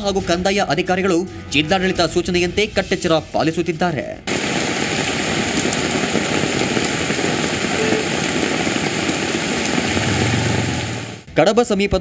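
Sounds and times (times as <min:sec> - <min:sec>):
rain: 0:04.3 - 0:11.3
river rushing in flood: 0:04.3 - 0:11.3.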